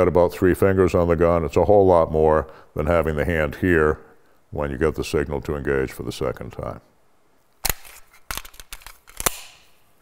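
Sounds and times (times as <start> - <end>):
pistol metallic clicks: 8.7 - 9.8.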